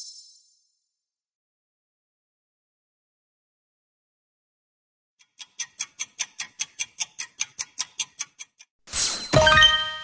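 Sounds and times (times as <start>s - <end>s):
clock ticking fast: 5.2s - 8.7s
bright chime: 8.9s - 10.0s.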